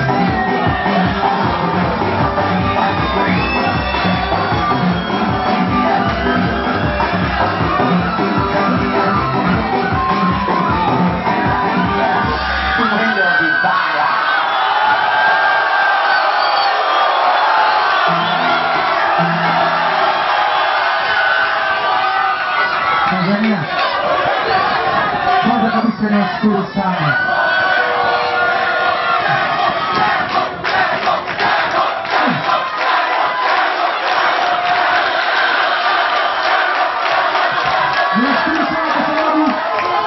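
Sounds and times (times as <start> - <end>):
loud dance music with bass beat: 0.0 - 13.4
crowd shouting and cheering: 0.0 - 40.0.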